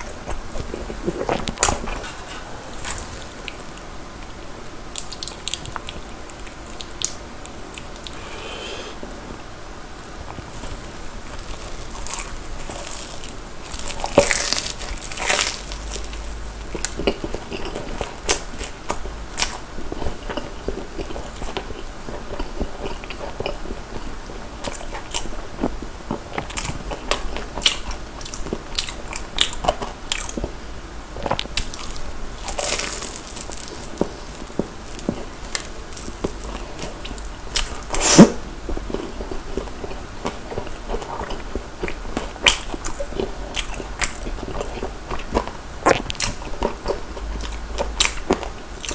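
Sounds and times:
open-mouthed chewing: 0:10.3 - 0:30.6, 0:31.2 - 0:48.9
crunching bites into fried food: 0:11.2 - 0:19.6, 0:31.2 - 0:38.2.

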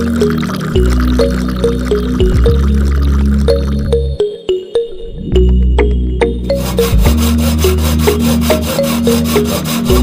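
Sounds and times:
background music: 0:00.0 - 0:10.0
hacksaw sawing plastic pipe: 0:06.5 - 0:10.0.

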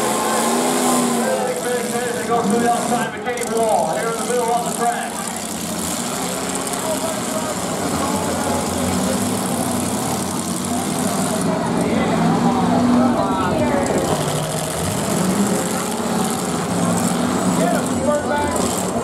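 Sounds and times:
car engines droning: 0:00.0 - 0:19.0
voices: 0:00.0 - 0:19.0.

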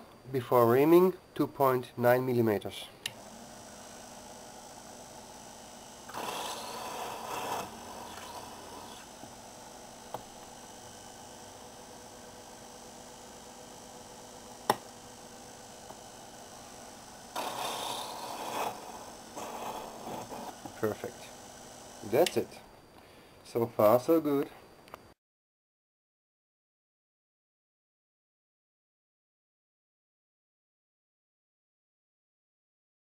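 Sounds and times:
benchtop mill motor running: 0:03.0 - 0:22.6
drill bit cutting metal: 0:03.2 - 0:22.6.

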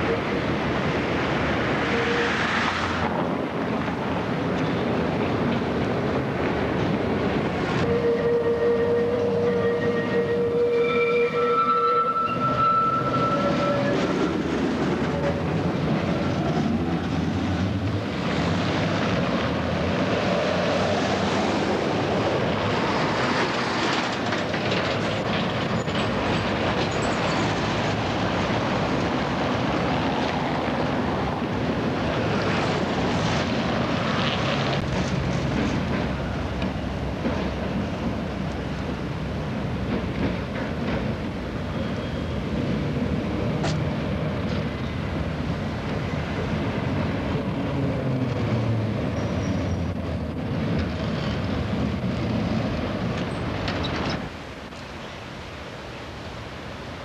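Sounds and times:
tram rumbling on track: 0:00.0 - 0:57.0
tram wheels squealing: 0:01.7 - 0:03.1, 0:07.8 - 0:16.9, 0:22.7 - 0:28.3, 0:39.7 - 0:45.1, 0:46.0 - 0:50.3.

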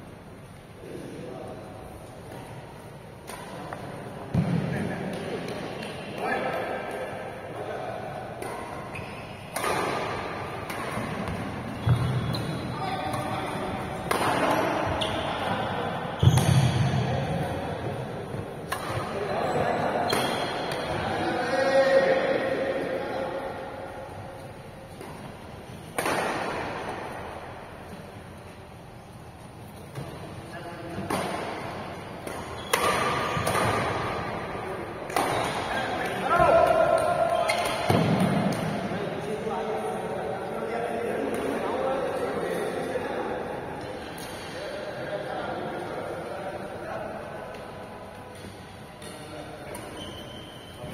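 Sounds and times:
players' voices: 0:00.7 - 0:28.5, 0:29.4 - 0:50.9
badminton racket hitting shuttlecock: 0:08.4 - 0:11.7, 0:13.0 - 0:15.0, 0:25.0 - 0:26.8, 0:32.2 - 0:34.3.

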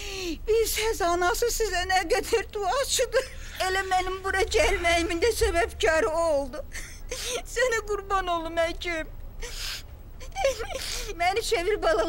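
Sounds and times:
woman sobbing: 0:00.0 - 0:08.1, 0:09.4 - 0:12.0.

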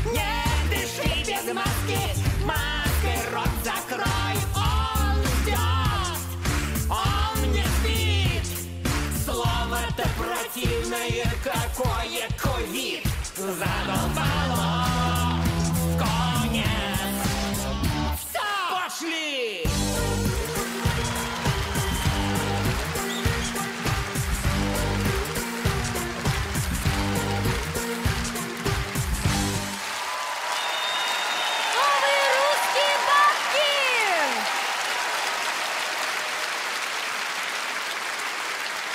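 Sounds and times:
music with heavy bass beat: 0:00.0 - 0:18.2, 0:19.7 - 0:29.7
audience applause: 0:19.9 - 0:38.9.

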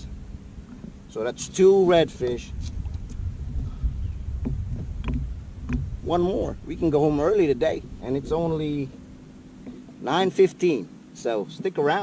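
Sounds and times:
wind buffeting microphone: 0:00.0 - 0:09.7.

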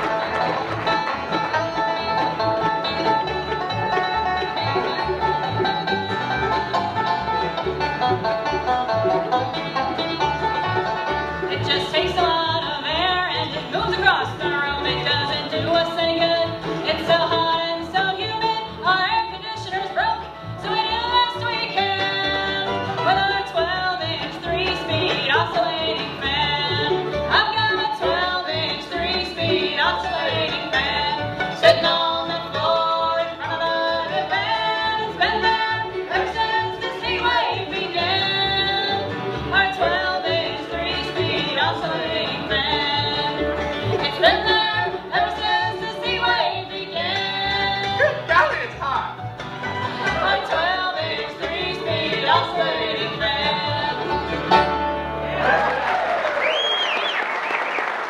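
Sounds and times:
bluegrass band playing live: 0:00.0 - 0:57.4.

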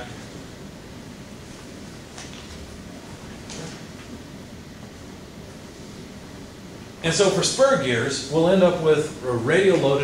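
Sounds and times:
low room hum with hiss: 0:00.0 - 0:10.0.

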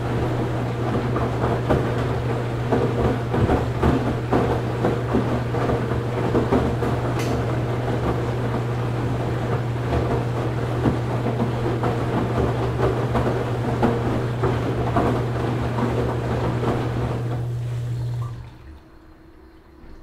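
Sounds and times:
drum knocking and crackling: 0:00.0 - 0:17.5
washing machine running: 0:00.0 - 0:20.0.

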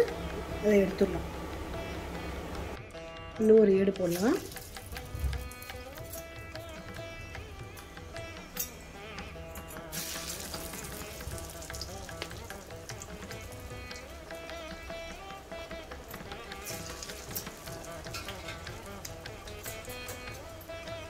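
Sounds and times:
background instrumental music: 0:00.0 - 0:21.0
fritters sizzling in hot oil: 0:04.1 - 0:06.8, 0:09.6 - 0:21.0.

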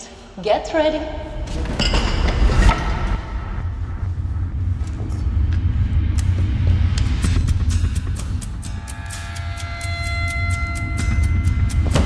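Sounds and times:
deep rumble: 0:01.0 - 0:09.0.

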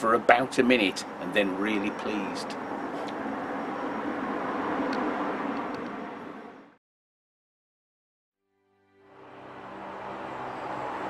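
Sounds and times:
passing vehicle rushing: 0:00.8 - 0:06.8, 0:09.1 - 0:11.0.

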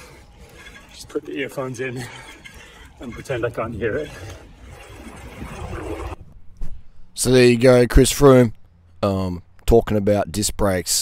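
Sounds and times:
bicycle road noise: 0:00.0 - 0:07.0
wind buffeting microphone: 0:03.0 - 0:06.5.

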